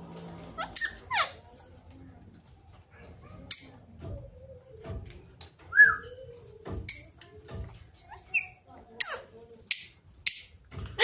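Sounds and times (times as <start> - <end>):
parakeets chirping: 0.5 - 1.4
parakeet squawk: 0.6 - 1.4.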